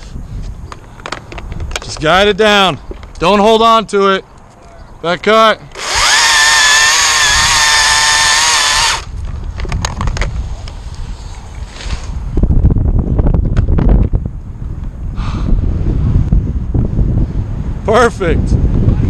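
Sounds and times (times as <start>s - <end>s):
chainsaw at full throttle: 5.8s - 9.1s
low rumbling: 5.8s - 19.0s.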